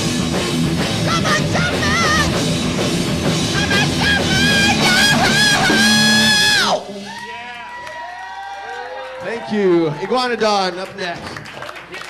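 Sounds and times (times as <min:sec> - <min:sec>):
heavy metal band held note: 0:00.0 - 0:06.9
audience whooping and shouting: 0:01.1 - 0:02.4, 0:03.5 - 0:10.6.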